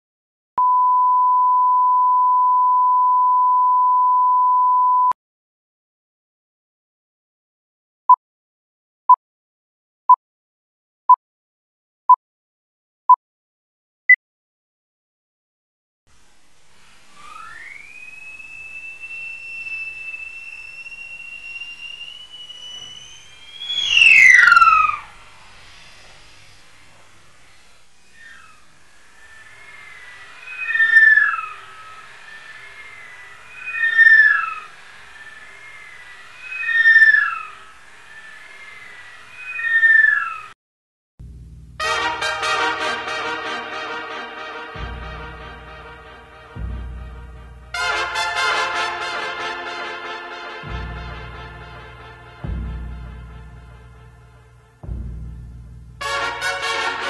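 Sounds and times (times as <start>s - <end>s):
electronic test tone: 0.6s - 5.2s, 17.3s - 25.0s
rising whistle-like tone: 17.0s - 26.7s, 27.5s - 40.6s
bird of prey scream: 17.2s - 25.2s, 28.1s - 40.6s.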